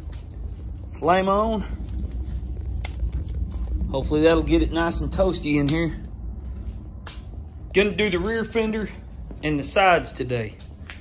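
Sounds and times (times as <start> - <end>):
low rumble of stove: 0.0 - 11.0
wood fire crackling: 0.0 - 11.0.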